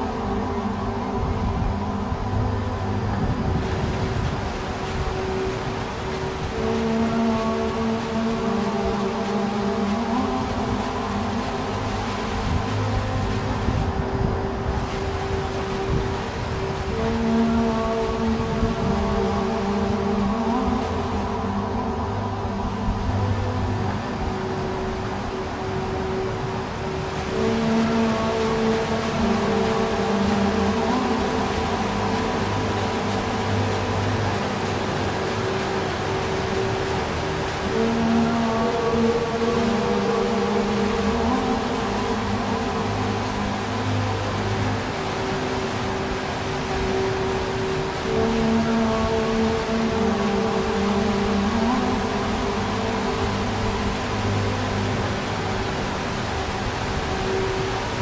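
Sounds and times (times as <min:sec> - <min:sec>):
ambient drone music: 0:00.0 - 0:58.0
steady wash of noise: 0:00.0 - 0:58.0.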